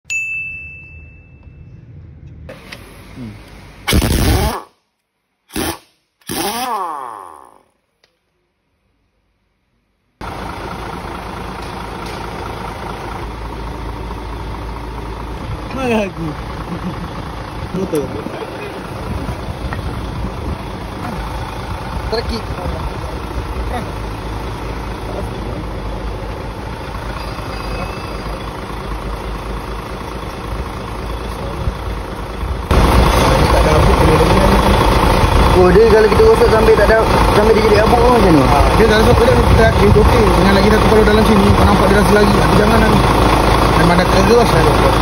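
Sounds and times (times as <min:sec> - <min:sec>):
chime ringing: 0:00.0 - 0:01.8, 0:27.1 - 0:28.6
impact wrench on wheel nuts: 0:05.5 - 0:06.7
diesel truck engine idling: 0:10.2 - 0:45.0.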